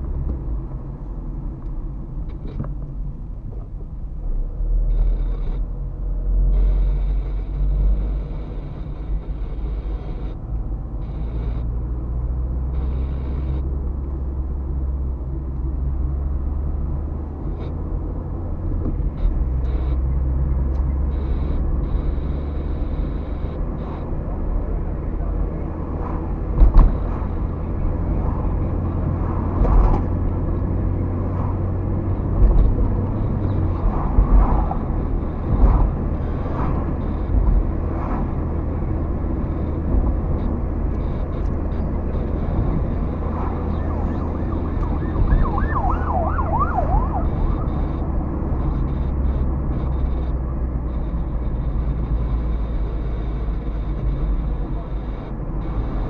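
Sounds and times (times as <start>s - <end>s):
road and engine rumble: 0.0s - 56.0s
wavering siren-like tone: 6.3s - 11.8s, 12.4s - 13.8s, 19.1s - 56.0s
car thumping over bumps: 26.4s - 30.5s, 32.2s - 33.1s.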